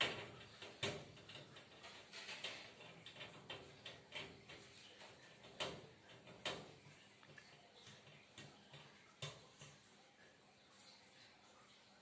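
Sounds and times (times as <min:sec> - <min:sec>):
crab legs ticking on wire mesh: 0:00.0 - 0:10.0.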